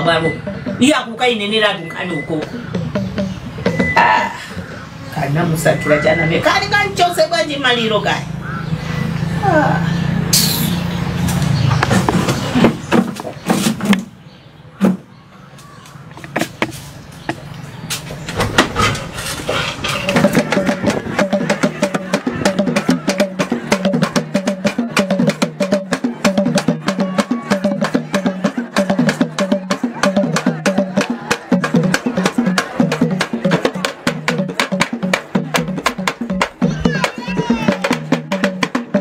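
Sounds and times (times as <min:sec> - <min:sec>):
music with fast percussive beat: 0:00.0 - 0:04.4, 0:19.9 - 0:39.0.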